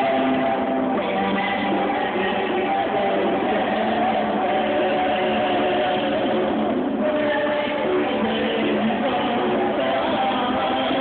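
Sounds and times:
women singing held notes: 0:00.0 - 0:11.0.

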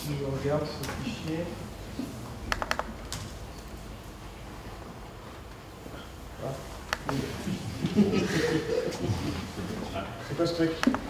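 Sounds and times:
laptop keyboard key clicks: 0:02.5 - 0:03.2.

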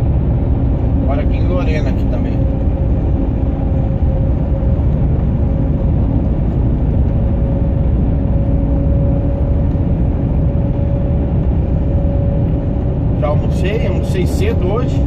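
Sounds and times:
road noise: 0:00.0 - 0:15.0
steady whine: 0:00.0 - 0:15.0
truck engine rumble: 0:00.0 - 0:15.0.

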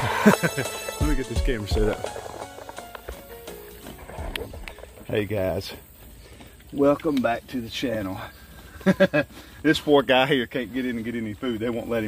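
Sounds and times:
background music: 0:00.0 - 0:04.9
pigs grunting: 0:03.9 - 0:05.2.

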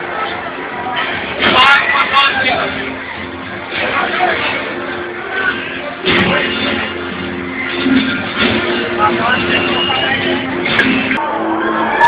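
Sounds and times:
crowded hall din: 0:00.0 - 0:12.0.

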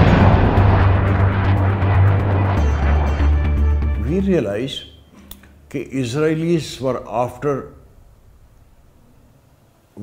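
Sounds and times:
jet aircraft roar: 0:00.0 - 0:04.5
background music: 0:00.0 - 0:04.8.

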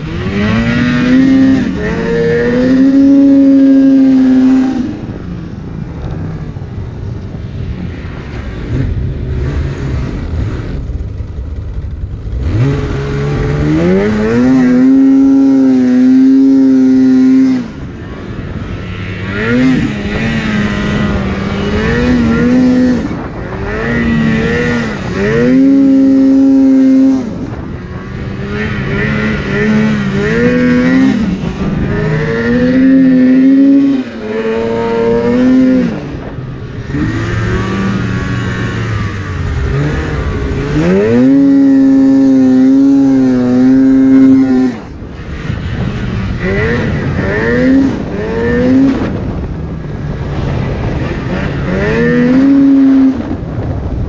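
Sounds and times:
snowmobile engine revving: 0:00.0 - 0:05.3, 0:07.9 - 0:54.0.

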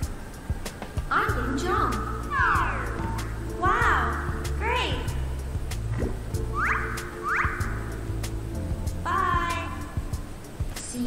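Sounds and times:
cartoon background music: 0:01.1 - 0:11.0.

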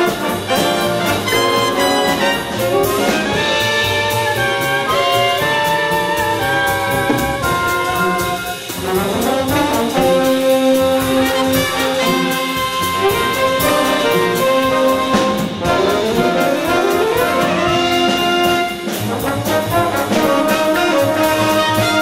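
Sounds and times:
drum beat: 0:00.0 - 0:22.0
jazz big band playing: 0:00.0 - 0:22.0.

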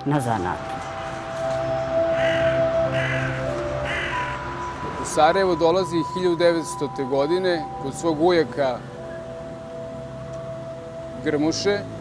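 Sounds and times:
background music with held notes: 0:00.0 - 0:12.0
bird cawing: 0:01.8 - 0:04.8.

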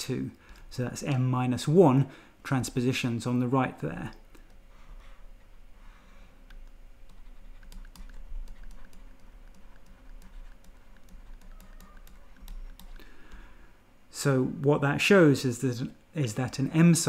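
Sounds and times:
stylus clicking on tablet screen: 0:06.5 - 0:13.4.

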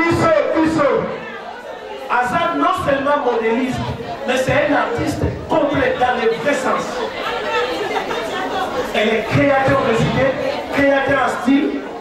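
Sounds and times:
room chatter: 0:00.0 - 0:12.0
people talking: 0:02.1 - 0:12.0.

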